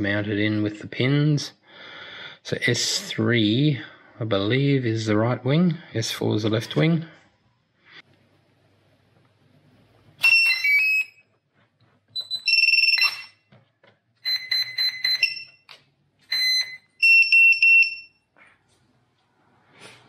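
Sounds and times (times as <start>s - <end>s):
short electronic beeps: 14.2s - 15.6s.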